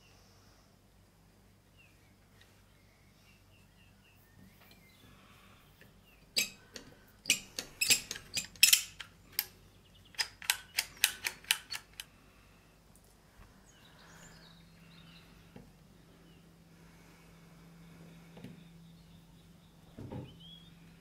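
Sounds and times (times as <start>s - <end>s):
metallic clicks of door lock: 6.4s - 9.5s, 10.2s - 12.1s.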